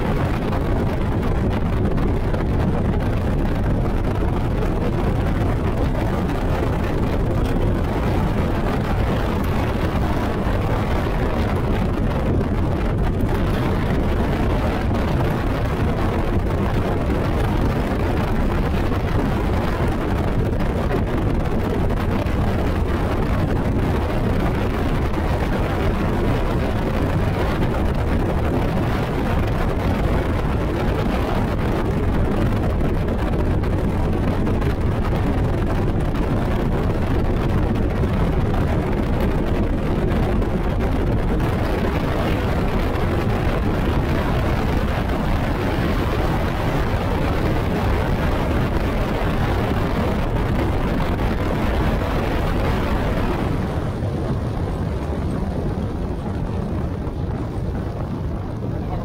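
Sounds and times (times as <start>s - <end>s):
boat hull on water: 0.0s - 59.0s
outboard motor at full speed: 0.0s - 59.0s
wind rush over microphone: 0.0s - 59.0s.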